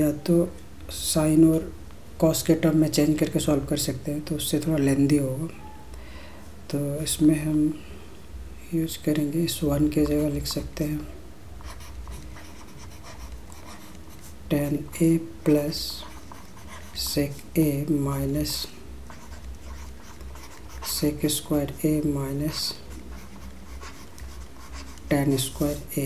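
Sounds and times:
low steady hum: 0:00.0 - 0:26.0
stylus scratching on tablet: 0:09.7 - 0:15.0, 0:15.7 - 0:17.5, 0:18.4 - 0:26.0.

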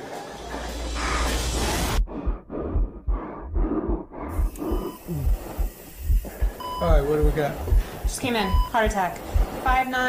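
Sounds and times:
heavy labored breathing and grunts: 0:00.0 - 0:09.8
dull low thumps: 0:01.6 - 0:10.0.

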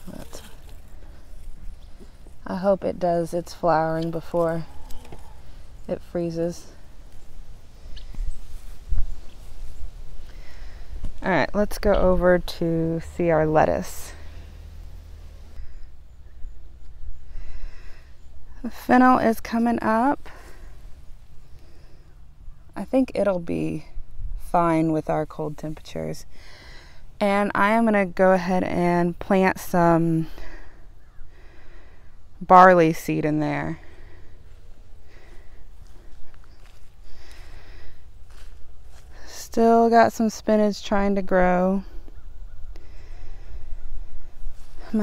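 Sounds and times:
wind rumbling on microphone: 0:04.0 - 0:18.6.

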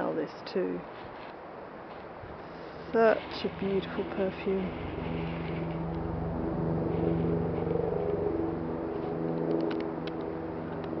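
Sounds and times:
motor engine humming: 0:02.6 - 0:11.0.

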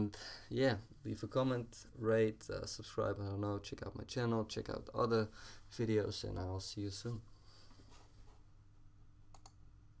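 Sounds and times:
faint steady hum: 0:00.0 - 0:10.0
computer mouse clicks: 0:09.3 - 0:09.6.

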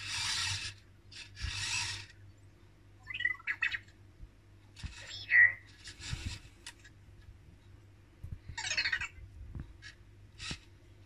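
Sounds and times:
robot motors whirring: 0:00.0 - 0:02.1.

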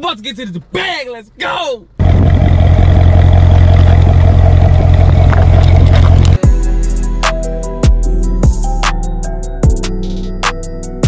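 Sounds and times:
car engine idling: 0:02.0 - 0:06.6.

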